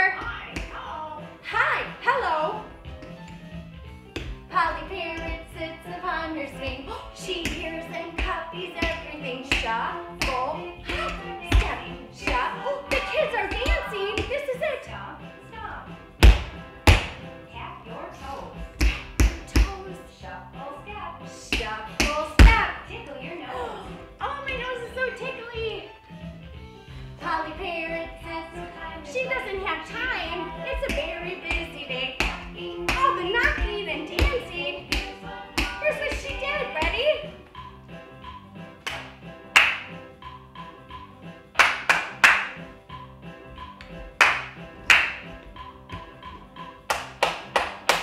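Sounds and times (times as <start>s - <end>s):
children's song with singing: 0.0s - 2.7s, 4.5s - 15.9s, 17.5s - 25.9s, 27.2s - 37.5s
sharp hand claps: 38.9s - 40.0s, 41.6s - 42.6s, 44.2s - 45.3s, 46.9s - 48.0s.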